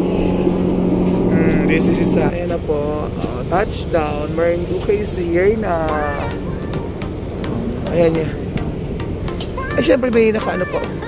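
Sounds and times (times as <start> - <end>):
ferry engines droning: 0.0 - 11.0.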